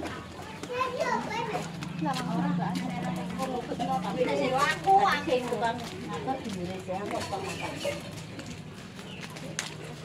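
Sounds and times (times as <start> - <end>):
children talking and calling out: 0.0 - 8.3.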